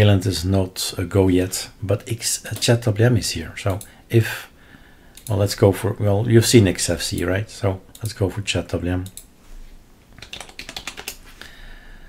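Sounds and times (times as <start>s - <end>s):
keyboard typing: 10.1s - 11.2s.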